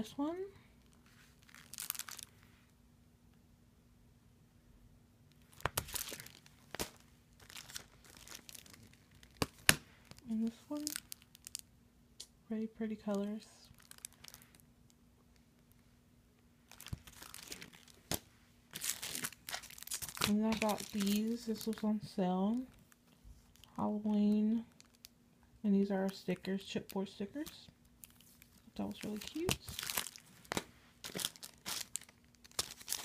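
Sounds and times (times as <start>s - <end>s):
plastic packaging crinkling: 0.8s - 2.4s, 5.4s - 11.7s, 13.1s - 14.7s, 16.6s - 23.8s, 24.7s - 25.1s, 26.1s - 33.0s.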